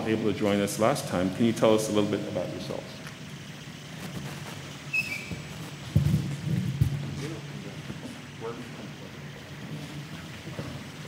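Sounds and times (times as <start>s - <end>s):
short squeak: 4.2s - 5.6s
loud thumps: 5.1s - 7.3s
footsteps on stage: 5.2s - 8.3s.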